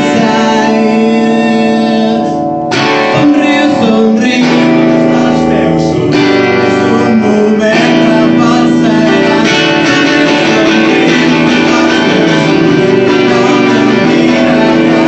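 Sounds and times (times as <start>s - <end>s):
loud electric guitar band music: 0.0s - 15.0s.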